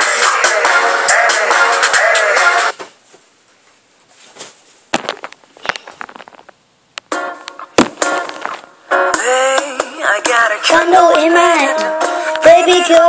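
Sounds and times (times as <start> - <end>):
song with singing: 0.0 - 2.8, 9.1 - 13.0.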